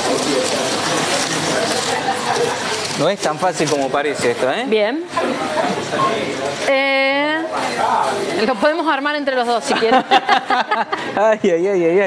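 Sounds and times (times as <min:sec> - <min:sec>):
indistinct chatter: 0:00.0 - 0:11.6.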